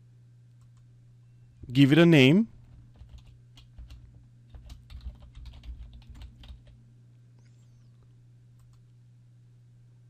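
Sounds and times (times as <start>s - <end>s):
low steady hum: 0.0s - 10.0s
keyboard typing clicks: 2.9s - 6.8s, 8.6s - 8.8s.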